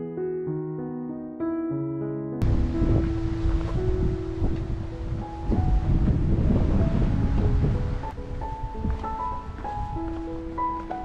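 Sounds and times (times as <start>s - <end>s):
slow melodic music: 0.0s - 11.0s
wind buffeting microphone: 2.4s - 11.0s.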